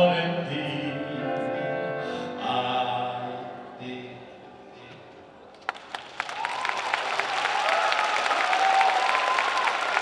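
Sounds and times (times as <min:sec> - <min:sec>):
audience applause: 0:05.6 - 0:10.0.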